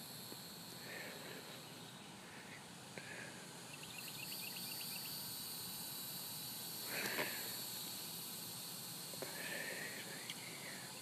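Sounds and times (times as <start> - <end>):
high insect buzzing: 3.7 - 11.0.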